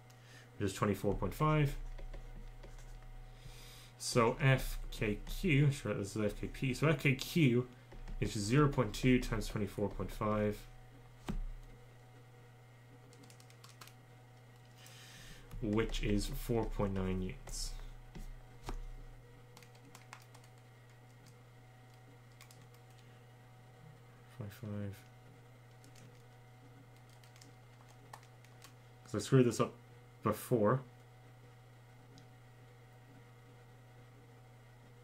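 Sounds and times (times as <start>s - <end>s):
low steady hum: 0.0s - 35.0s
faint keyboard typing clicks: 13.1s - 17.6s, 19.6s - 23.1s, 25.7s - 26.3s, 26.9s - 28.8s.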